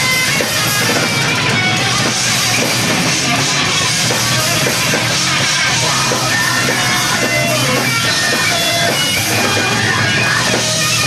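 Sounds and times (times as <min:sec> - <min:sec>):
distorted electric guitar: 0:00.0 - 0:11.0
fast drum kit hits: 0:00.0 - 0:11.0.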